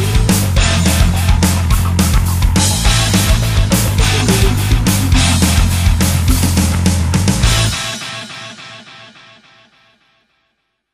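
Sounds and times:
guitar playing quick repeated figure: 0.0 - 8.8
heavy rock band: 0.0 - 9.9.

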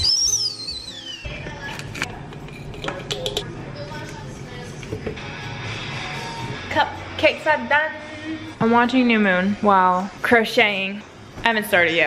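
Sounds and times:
kettle whistling: 0.0 - 1.3
background music: 4.0 - 12.0.

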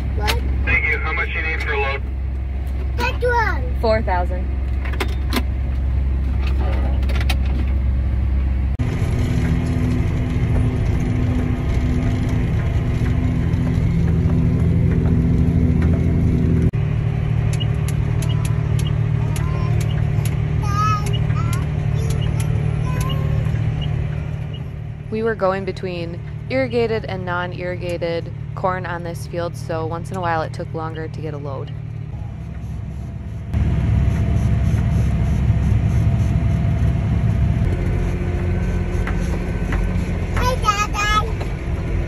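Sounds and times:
tractor engine droning: 0.0 - 42.0.

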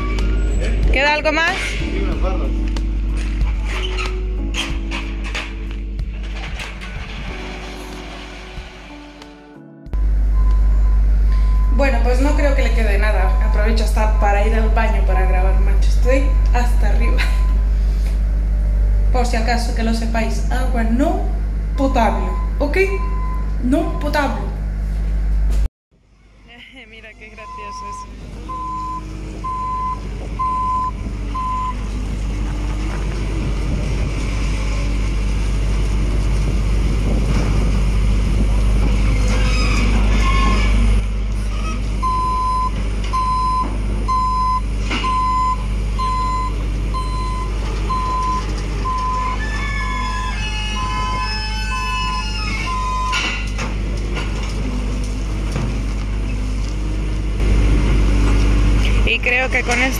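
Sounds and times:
diesel engine running: 0.0 - 59.9
reversing alarm beeping: 10.0 - 15.1, 15.8 - 17.6, 22.1 - 24.2, 27.3 - 31.9, 42.0 - 53.5.

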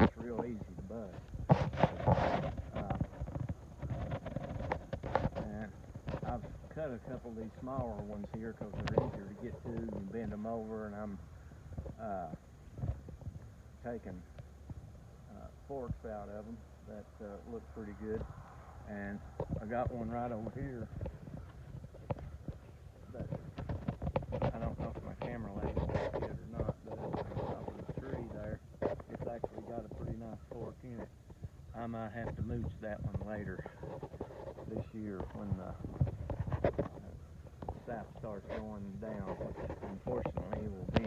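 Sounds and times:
man speaking: 0.0 - 1.2, 5.4 - 11.2, 12.0 - 12.4, 13.8 - 14.3, 15.3 - 18.2, 18.9 - 20.9, 23.1 - 23.4, 24.4 - 28.6, 29.2 - 31.1, 31.8 - 33.7, 34.7 - 35.8, 37.8 - 41.0
footsteps on ground: 0.0 - 41.0.

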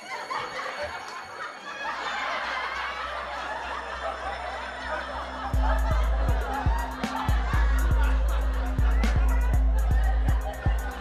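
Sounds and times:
people chuckling and snickering: 0.0 - 11.0
background music with bass: 3.7 - 11.0.

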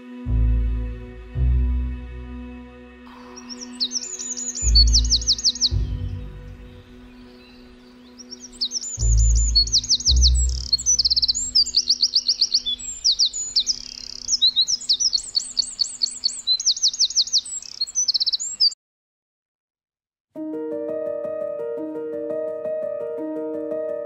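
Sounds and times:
wren singing trills: 3.1 - 18.8.

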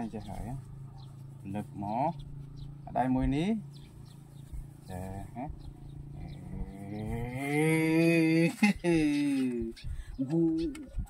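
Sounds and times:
cow mooing: 5.0 - 8.1.

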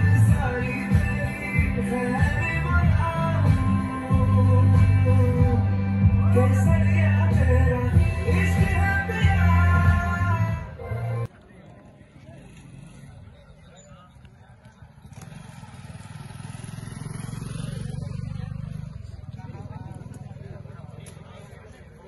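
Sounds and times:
crowd murmur: 0.0 - 22.0
vehicle engine passing by: 15.0 - 21.4.

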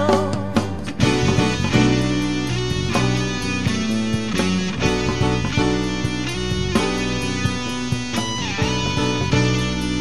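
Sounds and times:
drum kit: 0.0 - 10.0
electric guitar chords: 0.0 - 10.0.

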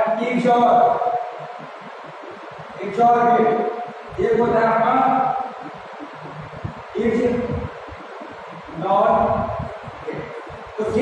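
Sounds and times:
man speaking: 2.8 - 5.5, 7.0 - 7.6, 8.8 - 11.0.

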